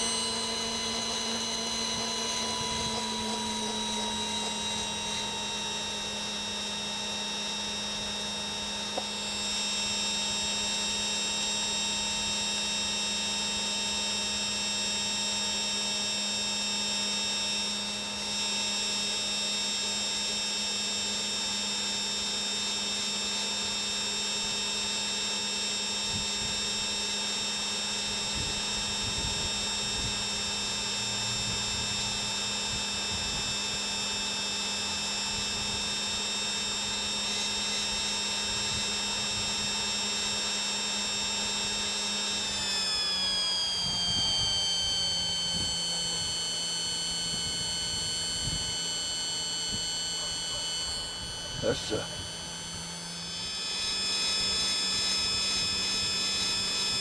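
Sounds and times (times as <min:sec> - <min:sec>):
coffee roaster blower humming: 0:00.0 - 0:57.0.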